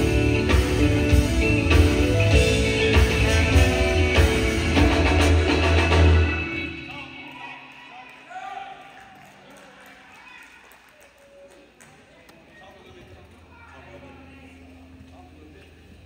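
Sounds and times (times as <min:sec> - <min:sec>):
live band playing: 0:00.0 - 0:07.3
faint voices in a hall: 0:00.0 - 0:16.0.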